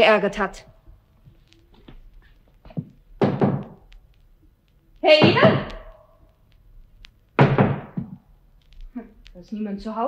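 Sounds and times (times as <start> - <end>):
knocking on a door: 2.8 - 3.8, 7.4 - 8.2.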